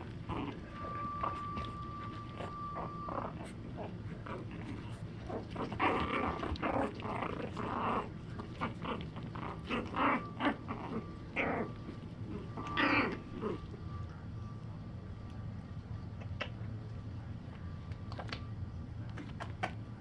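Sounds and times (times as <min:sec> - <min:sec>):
puppies growling in play: 0:00.0 - 0:14.1.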